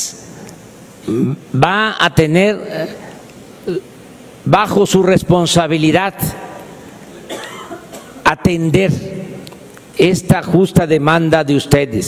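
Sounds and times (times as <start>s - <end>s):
short cough: 7.3s - 8.2s.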